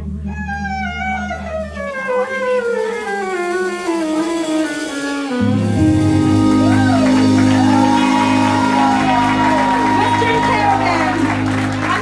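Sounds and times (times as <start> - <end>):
string instrument sliding down in pitch: 3.7 - 11.9
held low note: 5.3 - 12.0
country band loud chord: 5.4 - 12.0.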